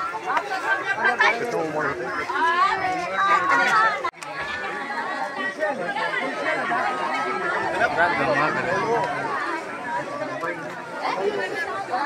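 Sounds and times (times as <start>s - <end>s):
overlapping voices talking: 0.0s - 12.0s.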